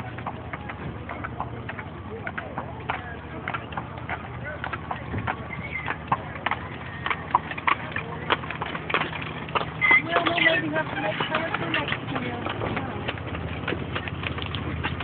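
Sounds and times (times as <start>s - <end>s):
mule hooves clopping: 0.0s - 15.0s.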